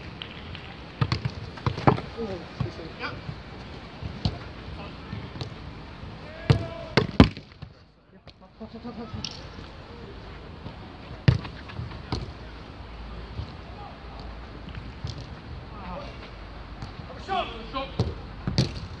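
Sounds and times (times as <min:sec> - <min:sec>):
players calling out: 0:00.5 - 0:07.3, 0:08.1 - 0:18.3
boot kicking football: 0:01.0 - 0:05.6, 0:06.4 - 0:07.7, 0:10.6 - 0:12.4, 0:18.0 - 0:19.0.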